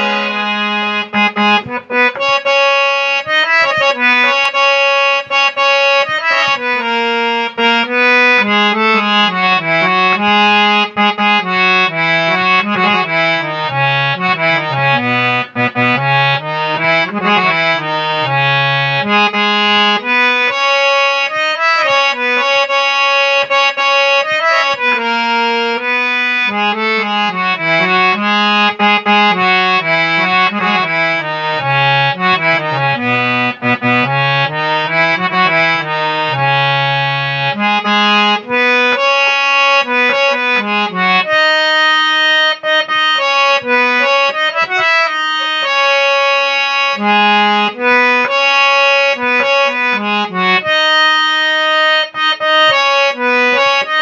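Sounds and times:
harmonium melody: 0.0s - 54.0s.

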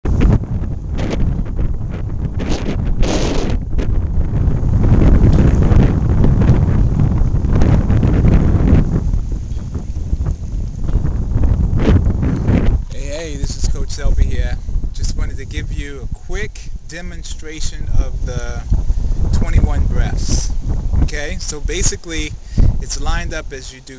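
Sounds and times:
wind buffeting microphone: 0.0s - 23.9s.

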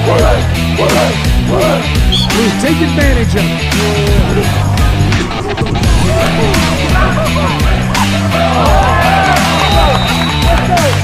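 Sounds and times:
music with heavy bass beat: 0.0s - 11.0s.

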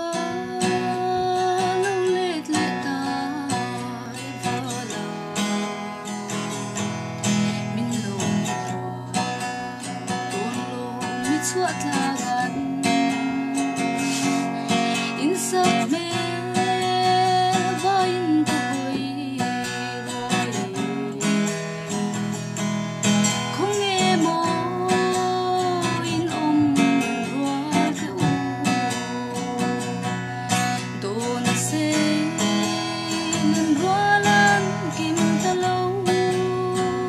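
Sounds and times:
person singing: 0.0s - 22.4s, 23.3s - 37.0s
strummed acoustic guitar: 0.0s - 37.0s.

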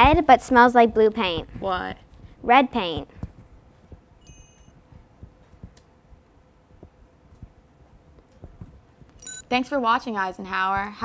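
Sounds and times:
faint high chime: 4.2s - 4.8s.

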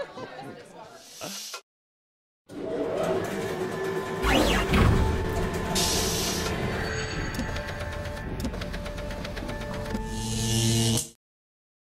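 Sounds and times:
music: 2.5s - 11.2s
hiss with low hum: 5.7s - 6.6s.

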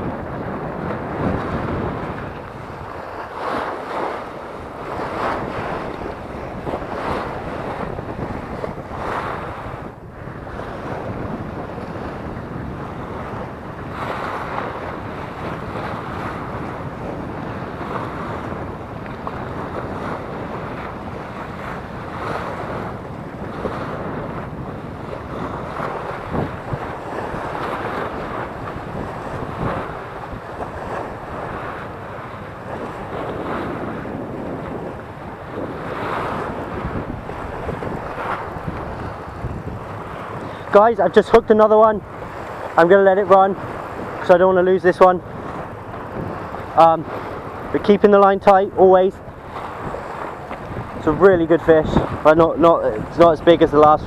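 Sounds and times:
waves splashing against seawall: 0.0s - 54.0s
wind buffeting microphone: 0.0s - 54.0s.

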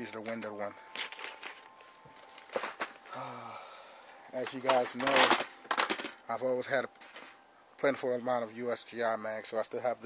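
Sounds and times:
plastic bags crinkling: 0.1s - 3.3s, 4.4s - 6.2s.

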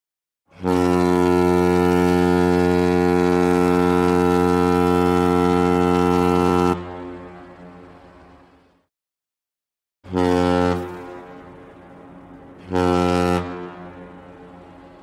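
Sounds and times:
ship's horn low blast: 0.5s - 8.9s, 10.0s - 15.0s.

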